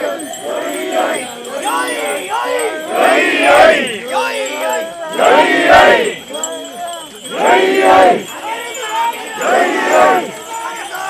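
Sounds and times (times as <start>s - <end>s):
group shouting rhythmic chant: 0.0s - 11.0s.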